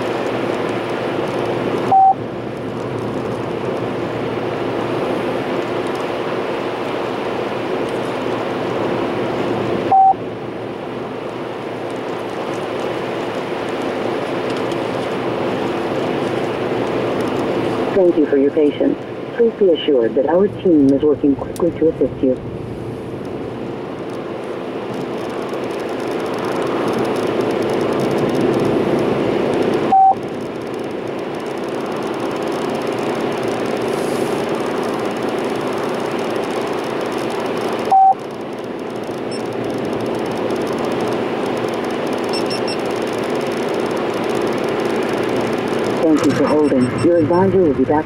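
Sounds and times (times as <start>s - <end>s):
car road and engine noise: 0.0s - 48.0s
short single-pitch beeps: 1.9s - 2.2s, 9.9s - 10.2s, 29.9s - 30.2s, 37.9s - 38.2s, 42.3s - 42.8s, 46.2s - 47.2s.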